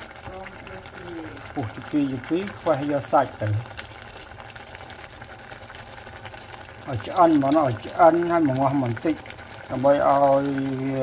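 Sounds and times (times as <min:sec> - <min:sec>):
water boiling in a saucepan: 0:00.0 - 0:11.0.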